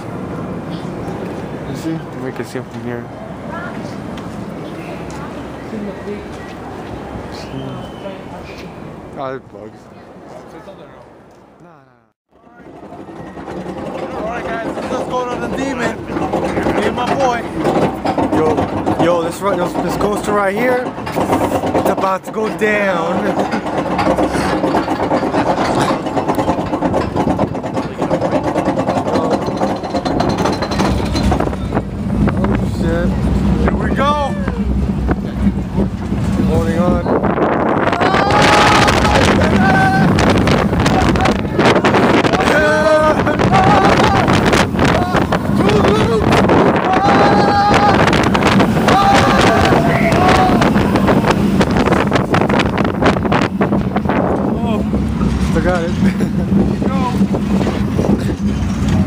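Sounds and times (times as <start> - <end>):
roller coaster train rumble: 0.0 - 11.6, 12.3 - 59.0
wind rushing on microphone: 23.4 - 59.0
riders screaming and yelling: 37.0 - 52.5.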